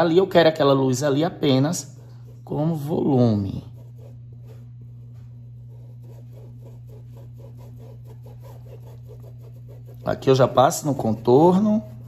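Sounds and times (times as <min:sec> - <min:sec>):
steady low hum: 0:00.0 - 0:12.0
paintbrush scrubbing on fabric: 0:01.4 - 0:12.0.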